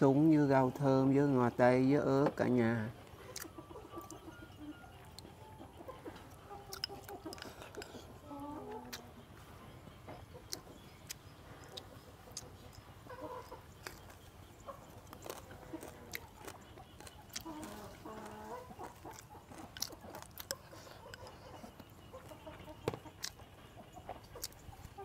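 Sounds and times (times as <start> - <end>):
chickens clucking: 0.0 - 25.0
chewing: 3.0 - 25.0.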